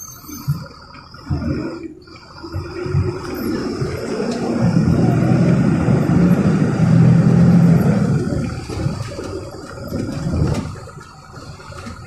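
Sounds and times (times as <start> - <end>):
bus engine drone from inside: 0.0 - 12.0.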